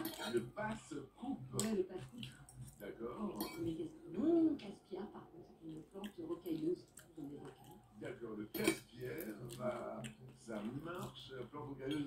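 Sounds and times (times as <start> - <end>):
tableware clinking: 8.5 - 8.9.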